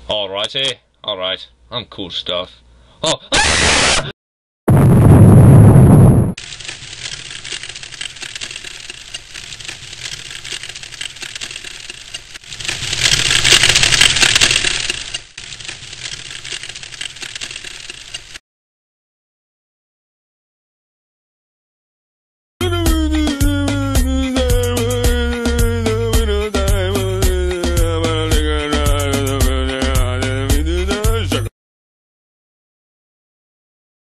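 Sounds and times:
loud crash: 0:04.7 - 0:06.4
plastic bricks clattering: 0:06.4 - 0:18.4.

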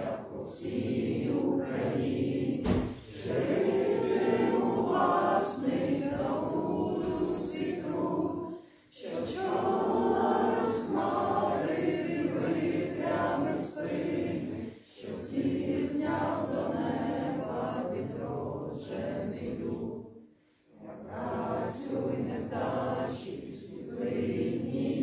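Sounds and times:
group of people singing: 0:00.0 - 0:25.0.

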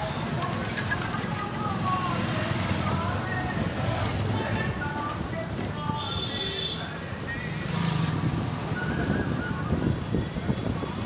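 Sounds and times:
motorbikes passing: 0:00.0 - 0:06.0, 0:06.8 - 0:11.0
people's voices: 0:00.0 - 0:08.1
scooter engine and road rumble: 0:00.0 - 0:11.0.

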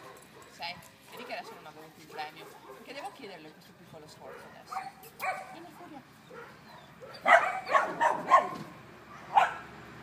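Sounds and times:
dog barking: 0:01.2 - 0:02.9, 0:04.2 - 0:09.7.

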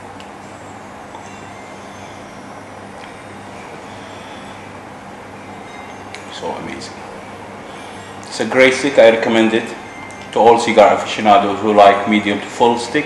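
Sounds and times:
low electrical hum: 0:00.0 - 0:13.0.

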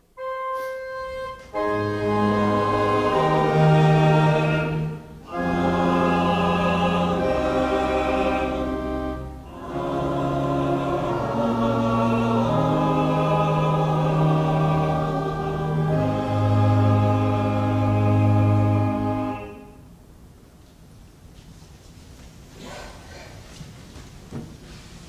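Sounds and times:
pipe organ: 0:00.1 - 0:19.8
choir and congregation singing: 0:00.8 - 0:19.8.

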